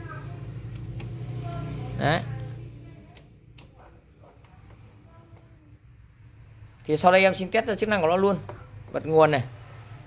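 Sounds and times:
fan humming: 0.0s - 10.0s.

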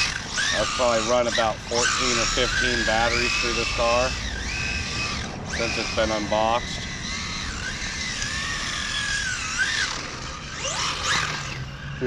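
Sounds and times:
electric motor whining: 0.0s - 12.0s.

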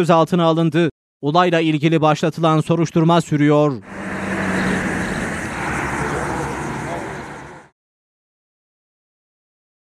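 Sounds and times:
traffic rushing: 3.7s - 7.8s
indistinct voices: 3.9s - 7.7s.

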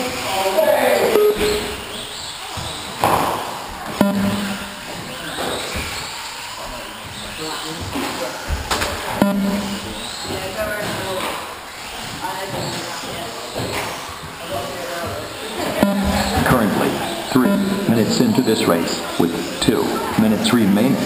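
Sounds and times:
electric toy cars racing: 0.0s - 3.7s, 9.9s - 15.7s
voices in echoing hall: 0.0s - 21.0s
sharp ringing knocks: 4.0s - 5.0s, 9.1s - 10.4s, 15.8s - 16.7s.

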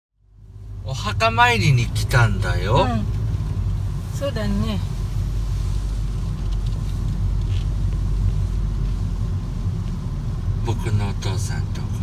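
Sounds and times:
car driving heard from inside: 0.2s - 12.0s.

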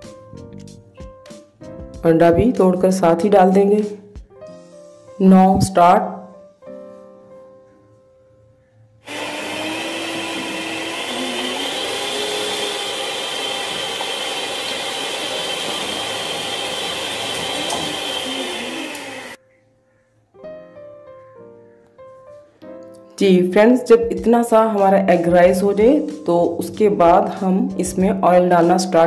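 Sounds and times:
soft background music: 0.0s - 9.0s, 19.4s - 29.0s
electric hand mixer whisking: 9.0s - 19.4s.

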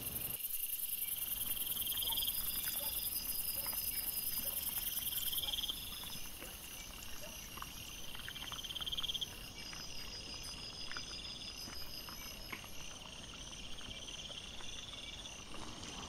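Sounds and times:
crickets chirping in trills: 0.0s - 16.0s
wild boar foraging rustles: 1.5s - 16.0s.

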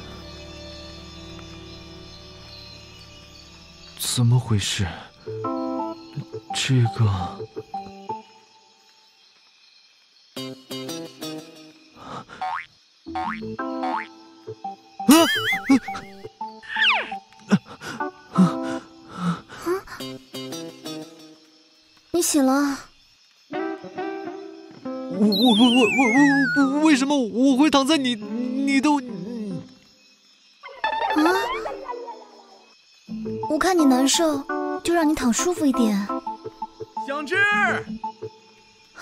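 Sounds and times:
playful background music: 13.1s - 19.4s, 23.5s - 27.0s, 33.1s - 38.4s
cartoon falling glide: 25.3s - 26.8s.

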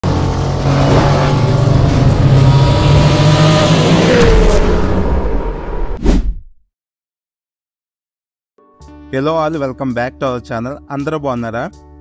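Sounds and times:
sports car engine running hard: 0.0s - 4.2s.

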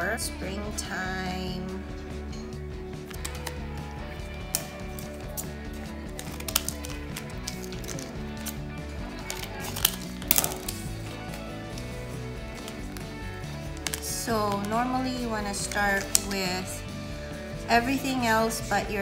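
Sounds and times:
background music: 0.0s - 19.0s
plastic packet crinkling: 3.1s - 3.6s, 4.4s - 14.8s.

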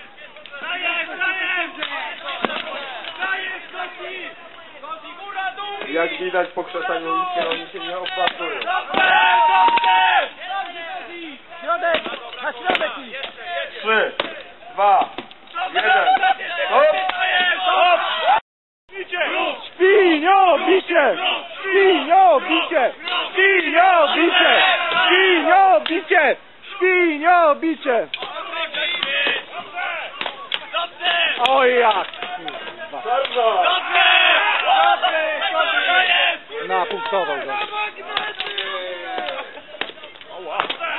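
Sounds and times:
spectators shouting: 0.0s - 40.9s
swords clashing on shields and armour: 1.7s - 3.8s, 7.2s - 10.9s, 11.7s - 17.8s, 22.5s - 26.1s, 28.1s - 40.9s.

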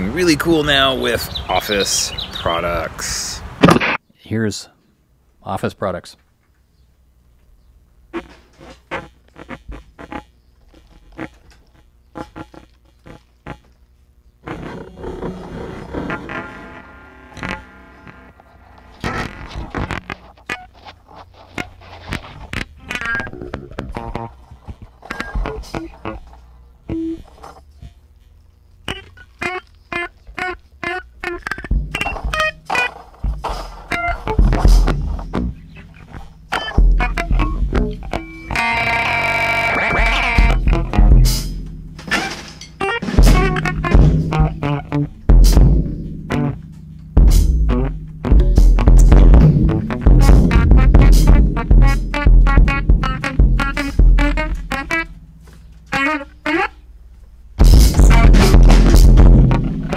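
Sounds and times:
pitched instrument notes: 14.4s - 19.6s, 28.9s - 57.0s, 57.6s - 59.9s
heavy bass: 14.4s - 20.0s, 31.0s - 59.9s
drum and percussion hits: 25.3s - 26.2s, 31.3s - 38.6s, 39.9s - 56.2s, 57.6s - 59.9s.

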